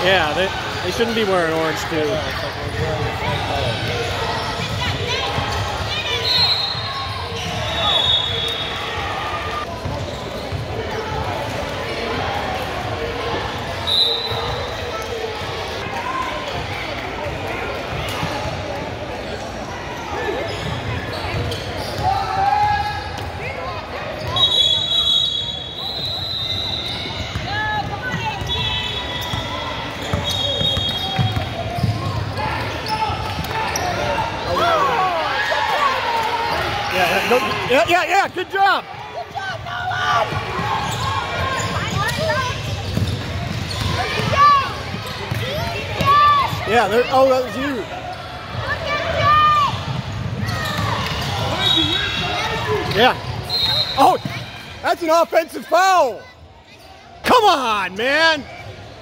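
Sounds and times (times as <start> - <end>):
spectators' voices: 0.0 - 59.0
sneakers squeaking: 0.7 - 11.6, 17.8 - 35.1, 39.2 - 55.7.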